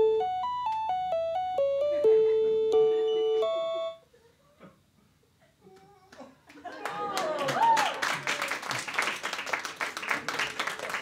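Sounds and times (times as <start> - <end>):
electric keyboard notes: 0.0 - 4.0
audience clapping: 6.1 - 11.0.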